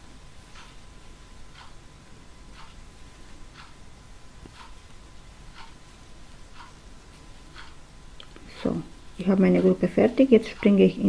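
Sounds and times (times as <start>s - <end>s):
clock ticking: 0.5s - 0.8s, 1.4s - 7.9s, 8.6s - 11.0s.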